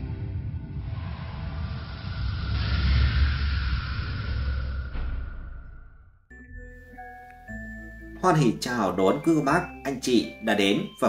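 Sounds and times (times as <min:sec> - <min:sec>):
rushing whoosh: 0:00.0 - 0:06.2
deep rumbling: 0:00.0 - 0:06.3.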